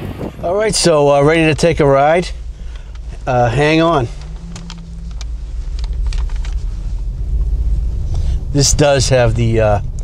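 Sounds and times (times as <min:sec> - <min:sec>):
car engine rumble in cabin: 0:00.0 - 0:10.0
road noise: 0:00.0 - 0:10.0.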